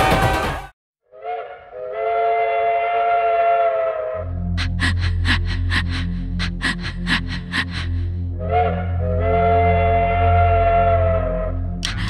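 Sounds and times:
steam train whistle: 0:01.1 - 0:04.1.

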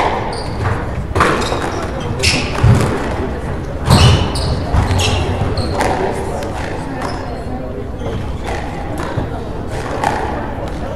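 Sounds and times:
shoe squeaks on wooden floor: 0:00.3 - 0:02.7, 0:03.9 - 0:06.0
squash ball knocks: 0:02.5 - 0:03.2.

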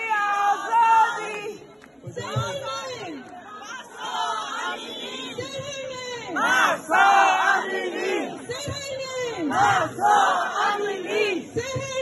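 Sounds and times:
protest crowd chanting: 0:02.3 - 0:12.0.

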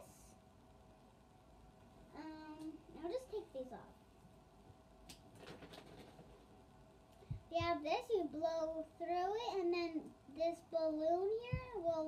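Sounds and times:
faint clicks and rustles of packaging: 0:05.0 - 0:07.4.

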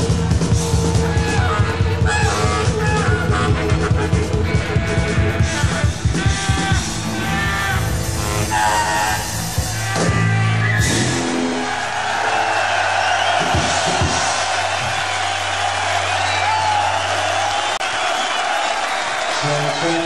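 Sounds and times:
rock band playing: 0:00.0 - 0:18.0
crowd cheering and whistling: 0:00.0 - 0:20.0.

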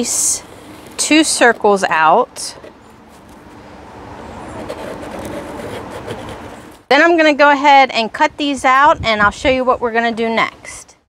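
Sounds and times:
pen scratching: 0:04.5 - 0:06.8.

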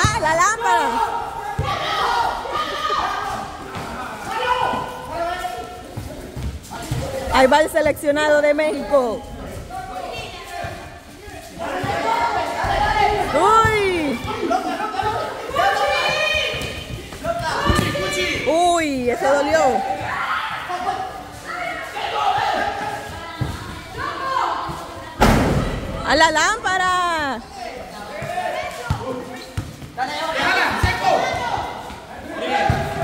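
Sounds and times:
players shouting and chatting: 0:00.0 - 0:33.0.

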